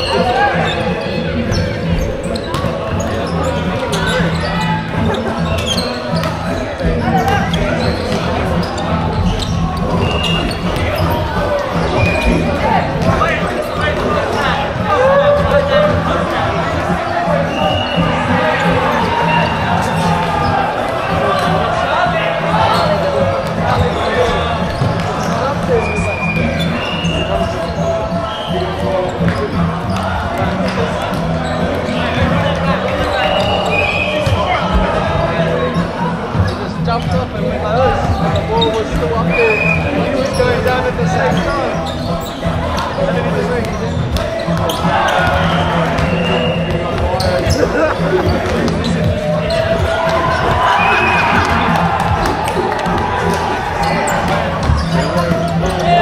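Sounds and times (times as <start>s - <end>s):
shoe squeaks on wooden floor: 0.0s - 14.3s, 22.6s - 35.3s, 36.3s - 56.0s
babble of voices: 0.0s - 56.0s.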